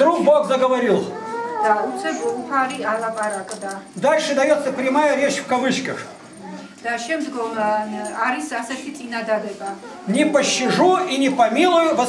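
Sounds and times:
woman speaking: 1.5s - 4.0s, 6.4s - 10.8s.

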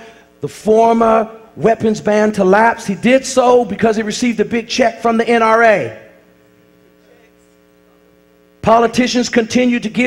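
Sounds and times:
faint electrical mains hum: 0.0s - 10.0s.

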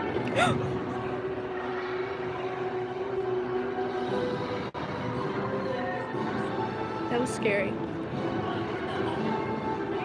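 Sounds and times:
background music: 0.0s - 10.0s
crowd chatter: 0.0s - 10.0s.

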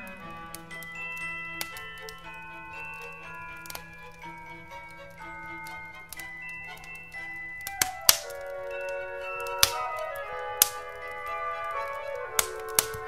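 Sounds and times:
crackling wood fire: 0.0s - 13.0s
instrumental christmas music: 0.0s - 13.0s.

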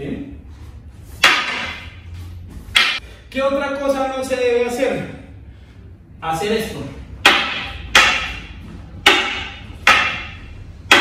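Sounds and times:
wooden staffs knocking: 1.2s - 2.0s, 2.7s - 3.0s, 7.2s - 11.0s.

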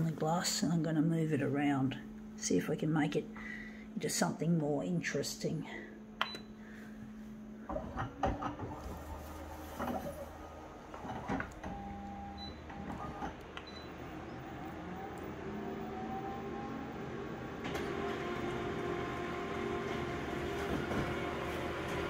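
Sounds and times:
photocopier rising whir: 6.3s - 22.0s
photocopier running: 7.2s - 22.0s.

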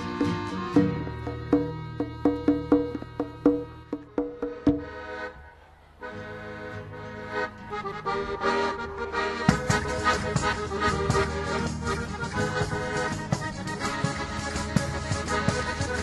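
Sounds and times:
sharply struck notes: 0.0s - 5.4s
accordion chords: 0.0s - 16.0s.

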